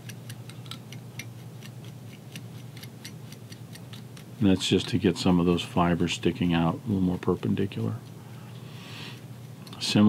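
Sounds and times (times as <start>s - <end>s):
needle scratching fly dressing: 0.0s - 8.4s
steady low hum: 0.0s - 10.0s.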